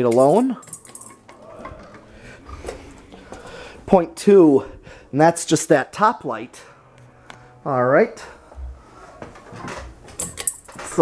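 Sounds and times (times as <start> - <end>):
man speaking: 3.9 - 6.7, 7.6 - 8.4.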